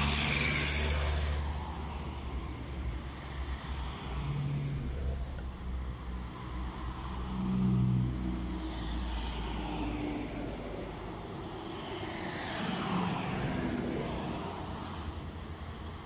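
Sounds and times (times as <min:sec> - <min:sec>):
cars passing on road: 0:00.0 - 0:16.0.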